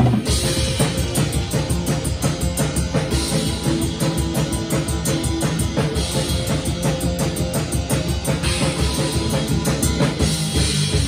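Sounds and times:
drum kit fast beat: 0:00.0 - 0:11.0
rock guitar backing: 0:00.0 - 0:11.0.

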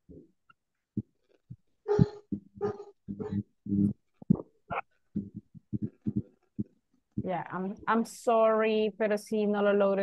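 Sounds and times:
dog barking: 0:01.9 - 0:03.4.

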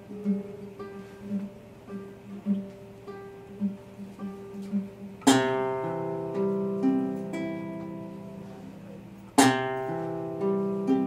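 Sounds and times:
acoustic guitars playing: 0:00.0 - 0:11.0.

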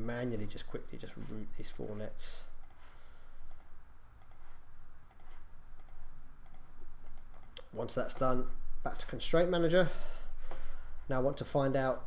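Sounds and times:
low steady hum: 0:00.0 - 0:12.0
computer mouse clicking: 0:02.6 - 0:07.7.

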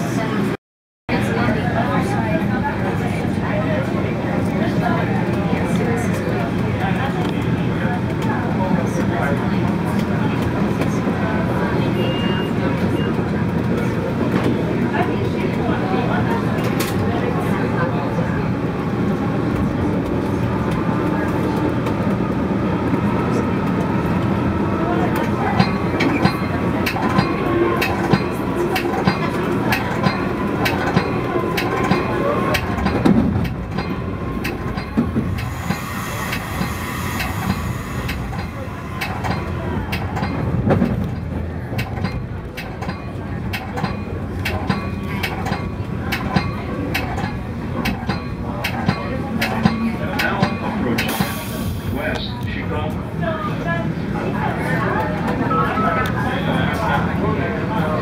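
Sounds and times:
train wheels rumbling on rail: 0:00.0 - 0:55.5
wheels clicking over rail joints: 0:25.2 - 0:37.3, 0:38.0 - 0:51.4.

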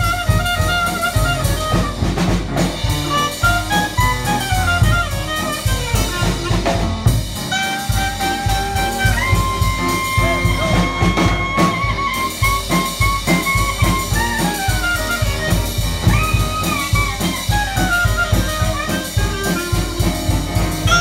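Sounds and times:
clarinet solo melody: 0:00.0 - 0:21.0
drum kit steady beat: 0:00.0 - 0:21.0
piano accompaniment: 0:00.0 - 0:21.0.

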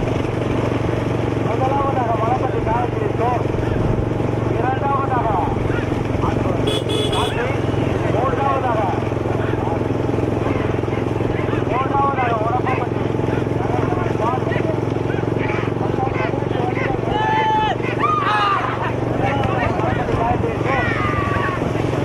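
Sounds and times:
vehicle engine running: 0:00.0 - 0:22.0
men shouting: 0:15.2 - 0:19.8.

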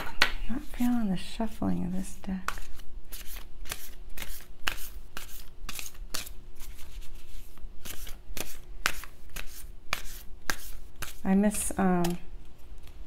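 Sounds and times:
cards shuffled by hand: 0:02.4 - 0:11.3.

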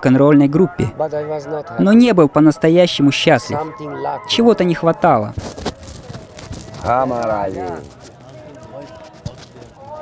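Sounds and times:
background murmur: 0:00.0 - 0:10.0.

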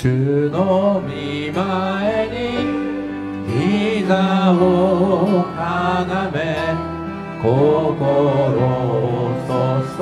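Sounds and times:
singers singing worship song: 0:00.0 - 0:10.0
violins: 0:00.0 - 0:10.0.

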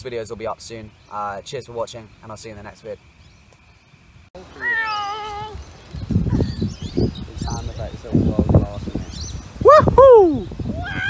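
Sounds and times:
wavering meow-like call: 0:04.5 - 0:05.6, 0:09.7 - 0:11.0.

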